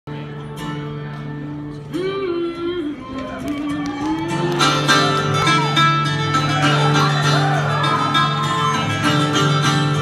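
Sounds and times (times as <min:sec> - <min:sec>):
acoustic guitars playing: 0:00.1 - 0:10.0.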